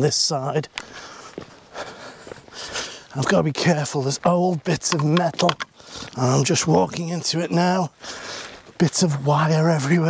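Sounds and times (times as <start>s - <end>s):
footsteps on stony ground: 0.0s - 10.0s
faint ticks and rustling: 0.6s - 10.0s.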